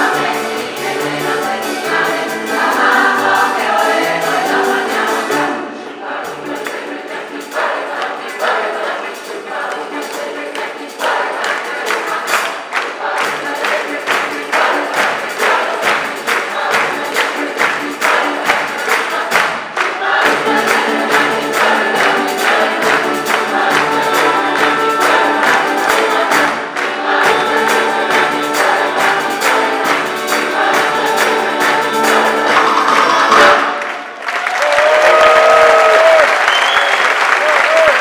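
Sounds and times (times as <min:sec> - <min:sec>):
drum kit: 0:00.0 - 0:05.6, 0:06.3 - 0:33.9
large choir singing: 0:00.0 - 0:34.2
frame drum: 0:06.2 - 0:33.7.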